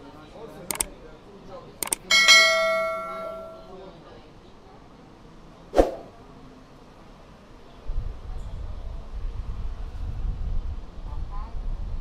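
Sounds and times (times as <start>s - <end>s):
mouse clicks: 0.7s - 0.9s, 1.8s - 2.1s
notification bell chime: 2.1s - 3.7s.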